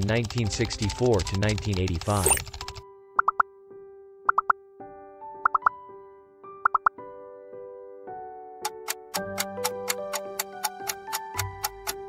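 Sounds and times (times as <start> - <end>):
soft music of held chords: 0.0 - 12.0
bright popping notes: 3.2 - 3.4, 4.3 - 4.5, 5.4 - 5.7, 6.6 - 7.0.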